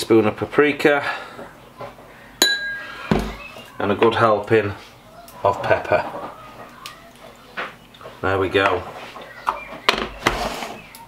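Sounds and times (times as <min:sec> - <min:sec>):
container thumping on worktop: 0:03.1 - 0:03.4.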